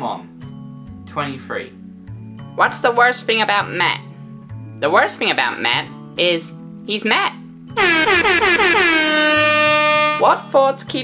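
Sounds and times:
background music: 0.0 - 11.0
air horn blast: 7.8 - 10.2.

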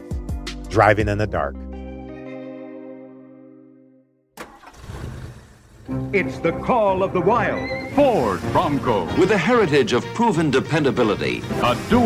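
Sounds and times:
vehicle engine starting: 4.4 - 6.1.

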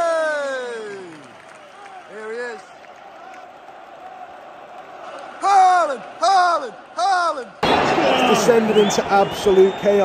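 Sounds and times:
man shouting: 0.0 - 1.2, 5.4 - 7.6
stadium crowd murmur: 1.1 - 10.0.

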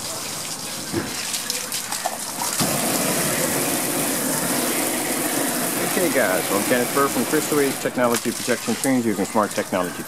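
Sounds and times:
water spraying from garden hose: 0.0 - 10.0.

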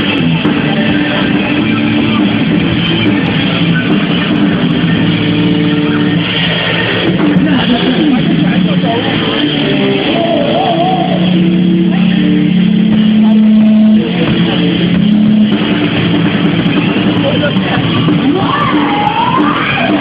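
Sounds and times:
live rock band playing loudly: 0.0 - 20.0.

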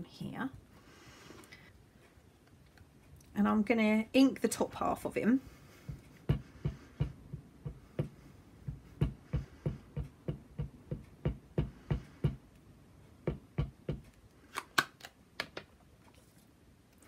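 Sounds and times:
ink pad tapping on stamp: 5.9 - 12.4, 13.2 - 14.1.

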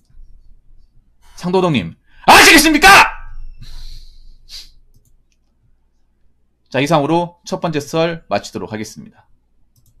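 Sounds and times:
sharp intake of breath: 3.5 - 4.8
soft exhale: 3.6 - 4.8.

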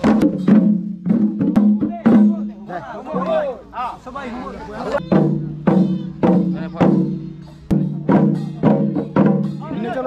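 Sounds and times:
drums beaten: 0.0 - 3.9, 4.9 - 10.0.

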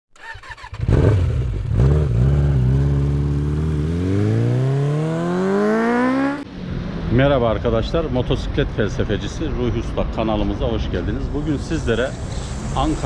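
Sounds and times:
motorcycle engine revving: 0.2 - 7.1.

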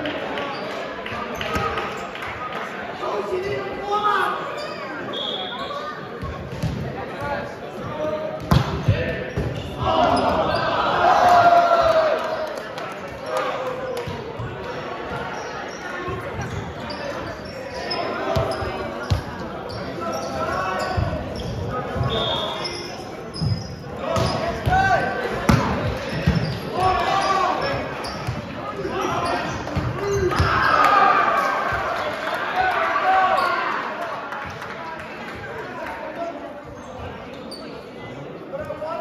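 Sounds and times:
sneakers squeaking on court: 0.5 - 2.2, 4.5 - 7.0, 7.8 - 10.8, 14.0 - 30.8, 36.6 - 38.1
players calling out: 7.0 - 34.0.

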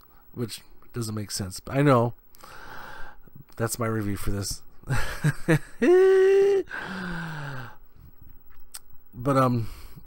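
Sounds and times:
man holding a loud vocal note: 5.8 - 6.8
man sighing breathily: 5.9 - 7.8.

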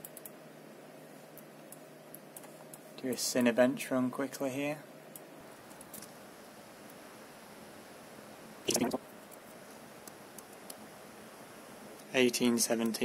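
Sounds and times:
computer fans whooshing: 8.6 - 12.3.

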